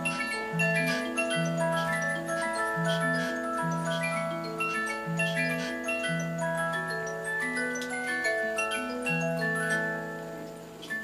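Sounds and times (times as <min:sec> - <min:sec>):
music box tune: 0:00.0 - 0:11.0.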